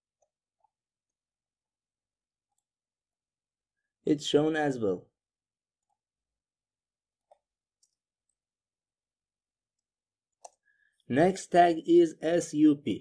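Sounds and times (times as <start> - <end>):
computer mouse and keyboard clicks: 9.7 - 10.6.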